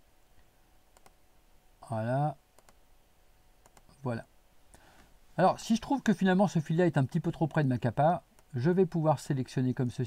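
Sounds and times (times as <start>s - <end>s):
faint mouse clicks: 0.4s - 1.2s, 2.6s - 2.8s, 3.6s - 4.0s.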